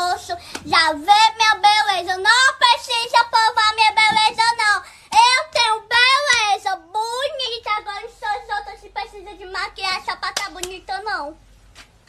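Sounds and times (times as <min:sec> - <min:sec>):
girl singing: 0:00.0 - 0:11.4.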